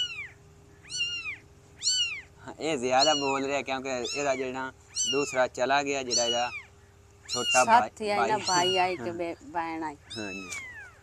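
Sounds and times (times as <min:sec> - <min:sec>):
kitten mewing: 0:00.0 - 0:09.2, 0:10.0 - 0:11.0.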